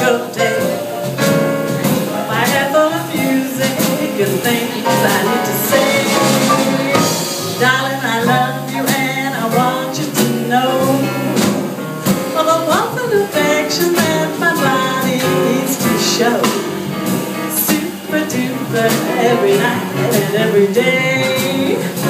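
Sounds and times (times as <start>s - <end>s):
drums: 0.0s - 22.0s
piano: 0.0s - 22.0s
plucked double bass: 0.0s - 22.0s
woman singing: 0.0s - 22.0s.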